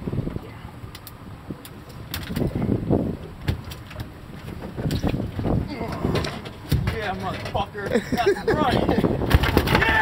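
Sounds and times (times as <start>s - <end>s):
low rumble of wind: 0.0s - 10.0s.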